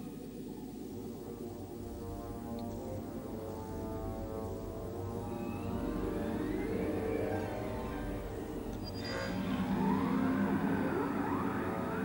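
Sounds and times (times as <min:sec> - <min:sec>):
whistling pitch glides: 0:08.8 - 0:12.0.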